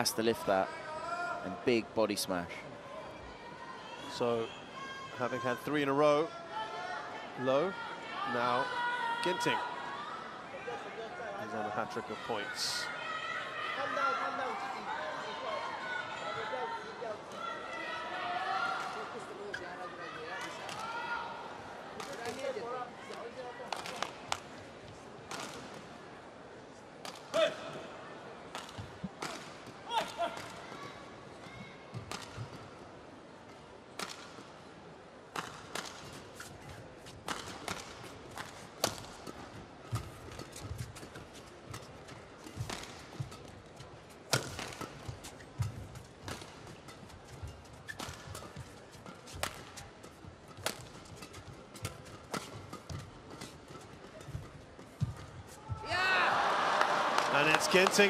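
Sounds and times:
rackets hitting shuttlecock: 0:44.3 - 0:46.7, 0:50.5 - 0:53.0
crowd cheering: 0:55.7 - 0:58.0.

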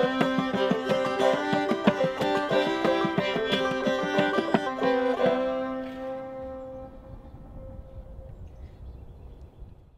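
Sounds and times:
fiddle and banjo chord ringing: 0:00.0 - 0:08.0.

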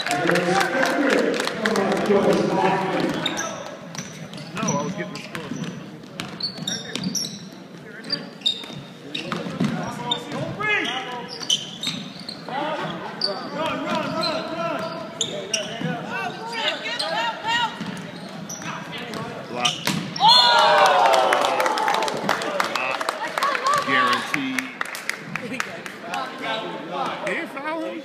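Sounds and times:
crowd cheering: 0:00.0 - 0:02.9, 0:20.2 - 0:24.7.

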